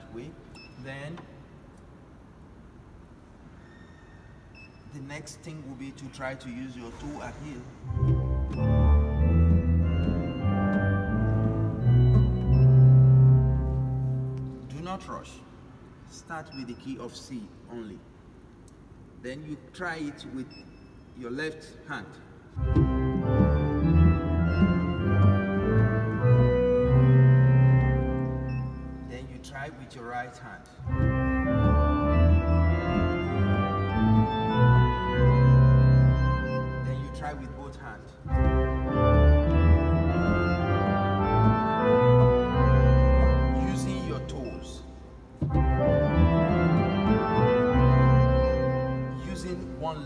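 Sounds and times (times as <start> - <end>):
church organ playing: 4.9 - 15.3, 22.5 - 50.0.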